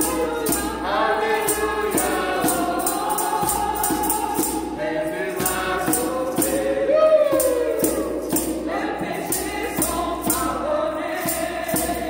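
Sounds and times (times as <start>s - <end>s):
sharp high percussive strikes: 0.0s - 12.0s
women singing a gospel hymn: 0.0s - 12.0s
djembe hand drum: 5.4s - 12.0s.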